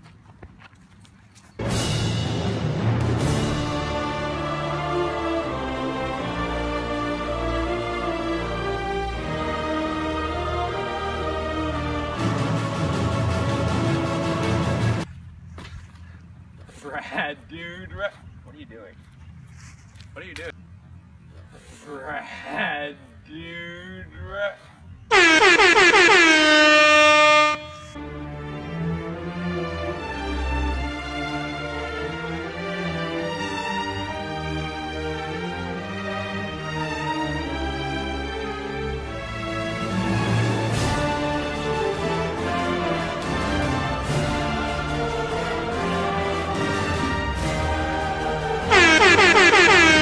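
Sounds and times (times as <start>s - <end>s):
background music: 1.6s - 15.1s, 27.0s - 50.0s
air horn blasts: 25.1s - 28.0s, 48.6s - 50.0s.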